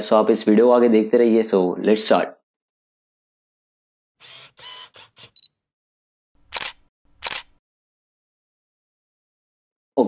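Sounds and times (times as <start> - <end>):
camera clicks and whirs: 6.5 - 7.6
loud shutter clicks: 6.5 - 7.6.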